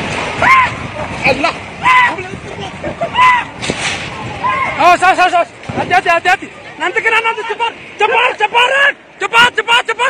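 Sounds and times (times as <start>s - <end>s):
sharp crack: 3.6s - 4.2s.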